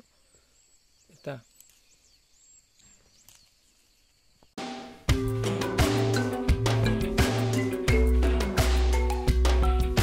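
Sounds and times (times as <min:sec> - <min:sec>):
faint high chirping: 0:00.0 - 0:04.6.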